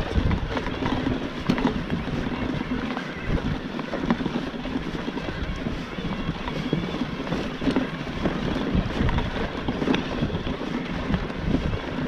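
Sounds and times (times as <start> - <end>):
bike rumbling and rattling: 0.0 - 12.0
wind buffeting microphone: 0.0 - 12.0.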